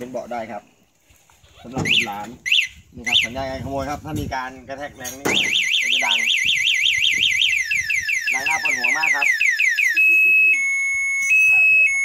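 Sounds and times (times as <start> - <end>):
alarm siren cycling patterns: 1.9 - 3.4, 5.3 - 12.0.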